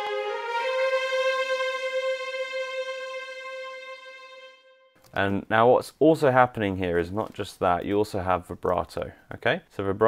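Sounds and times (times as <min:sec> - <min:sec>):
string section holding high note: 0:00.0 - 0:05.0.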